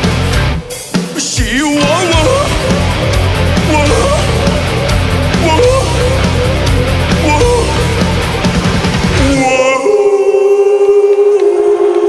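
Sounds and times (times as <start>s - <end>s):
person singing long held note: 1.8s - 12.0s.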